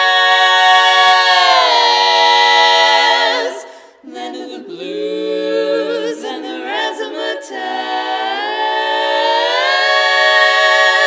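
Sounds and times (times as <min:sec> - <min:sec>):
women singing a cappella harmony: 0:00.0 - 0:11.0.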